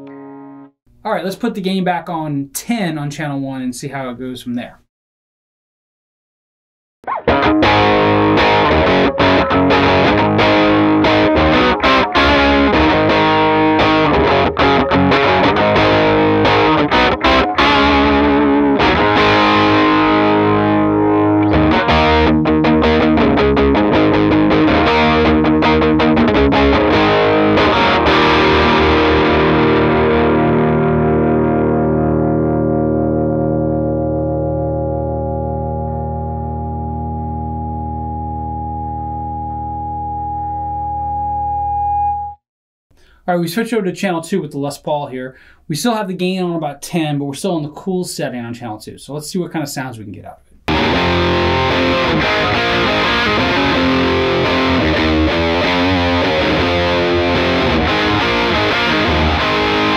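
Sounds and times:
distorted electric guitar riff: 0.0s - 0.8s, 7.0s - 42.4s, 50.6s - 59.9s.

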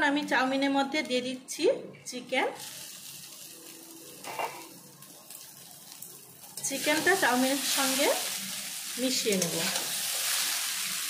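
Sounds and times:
food sizzling in a pan: 2.6s - 11.0s.

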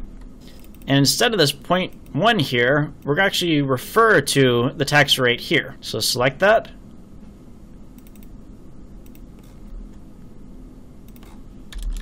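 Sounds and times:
steady low hum: 0.0s - 12.0s
mouse clicks: 8.0s - 8.3s, 11.1s - 11.4s.

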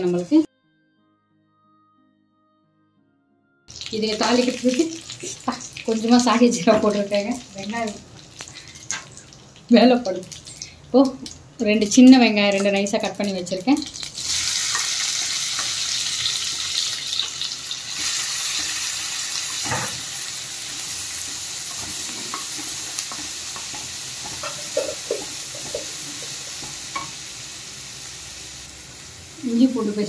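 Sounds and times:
onions sizzling in hot oil: 3.7s - 30.0s.

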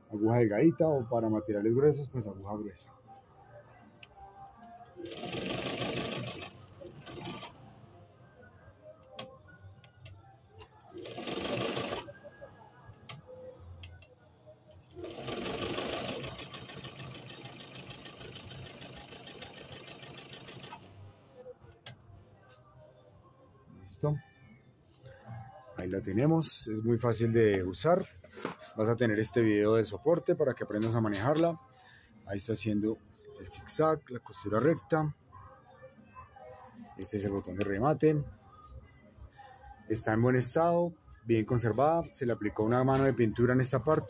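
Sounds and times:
sewing machine stitching: 5.0s - 7.6s, 11.0s - 12.1s, 15.0s - 20.9s.

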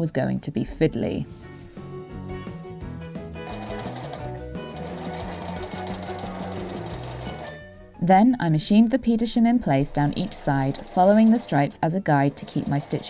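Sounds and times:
background music: 0.0s - 13.0s
sewing machine stitching: 3.4s - 7.6s, 10.0s - 13.0s.

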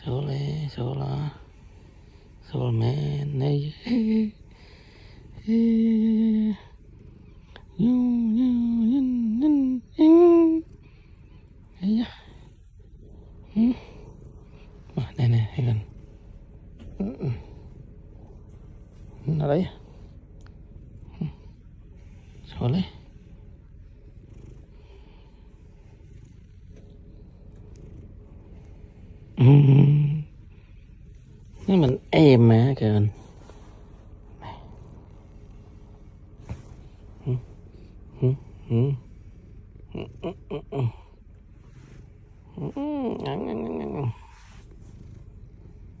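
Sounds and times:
cat purring: 0.0s - 46.0s.

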